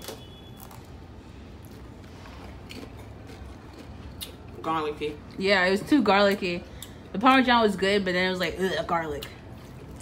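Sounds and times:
potato chip crunching: 0.0s - 1.0s, 1.6s - 5.2s.

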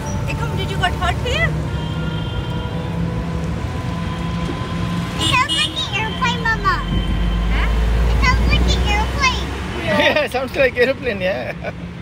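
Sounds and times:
road and wind rumble: 0.0s - 12.0s.

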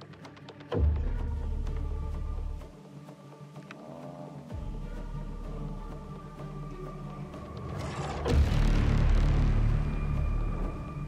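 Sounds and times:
background music: 0.0s - 11.0s
deep boom with rumble: 8.3s - 11.0s.

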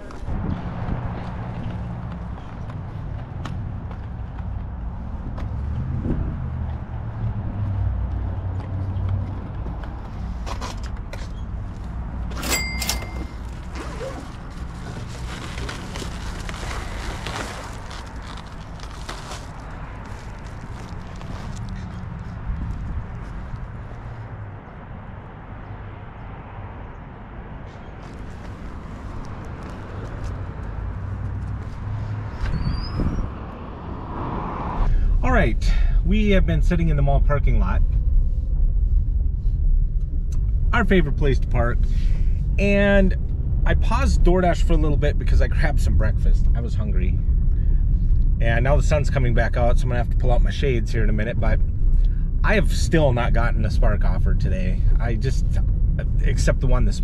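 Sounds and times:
low uneven rumble: 13.3s - 24.8s, 34.6s - 57.0s.

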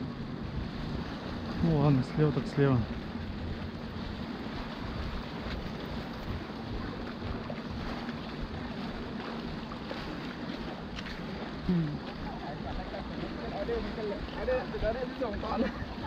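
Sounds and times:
wind rumbling on microphone: 0.0s - 16.0s.

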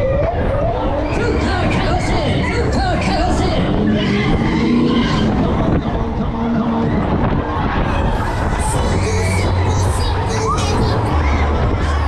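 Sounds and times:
low rumble of fairground ride: 0.0s - 12.0s
music playing: 0.0s - 12.0s
riders' voices: 0.0s - 12.0s.

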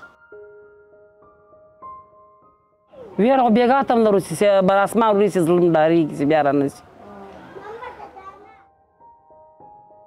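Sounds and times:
soft piano music: 0.0s - 5.7s, 7.9s - 10.0s.

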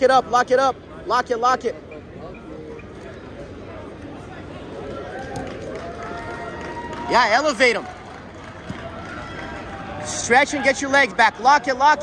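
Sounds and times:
busy sports hall noise: 0.0s - 12.0s.

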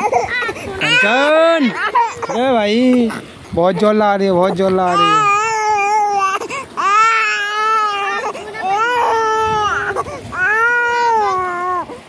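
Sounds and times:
infant gasping for breath: 0.0s - 0.8s, 6.4s - 6.8s, 9.9s - 10.3s
infant crying: 0.0s - 3.2s, 4.5s - 12.0s.

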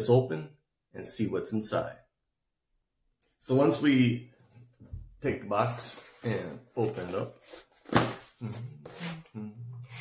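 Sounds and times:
cardboard scraping: 5.5s - 9.3s
cardboard snap: 7.8s - 8.3s.

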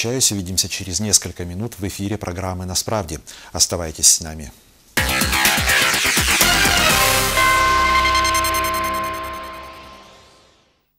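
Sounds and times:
news theme music: 5.0s - 10.8s.

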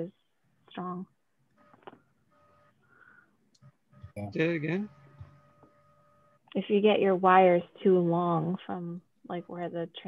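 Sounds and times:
faint steady tone: 0.0s - 10.0s.

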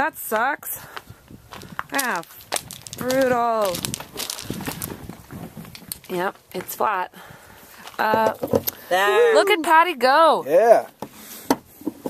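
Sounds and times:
footsteps on gravel: 0.3s - 8.4s.

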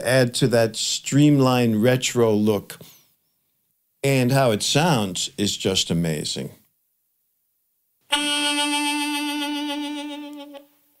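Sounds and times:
harmonica long held note: 8.1s - 10.7s.

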